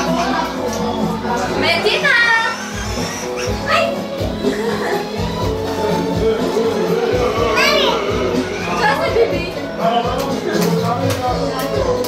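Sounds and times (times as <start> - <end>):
background music with steady beat: 0.0 - 12.0
child squealing: 2.1 - 5.1, 6.9 - 9.5
child vocalising: 2.2 - 5.5, 6.8 - 9.6.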